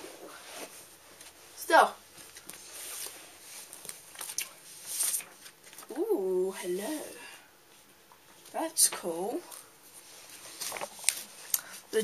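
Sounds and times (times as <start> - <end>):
glossy pages rustling: 2.2 - 5.9, 9.6 - 11.5.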